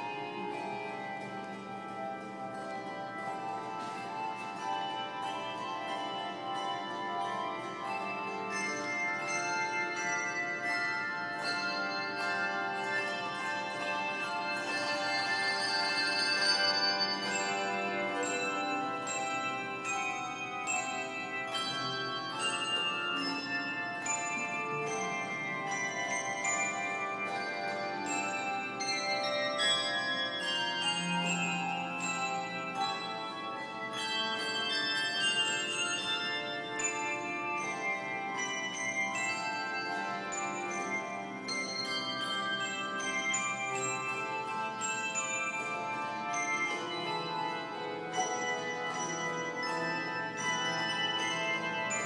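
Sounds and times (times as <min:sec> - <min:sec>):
handbell choir playing: 0:00.0 - 0:52.0.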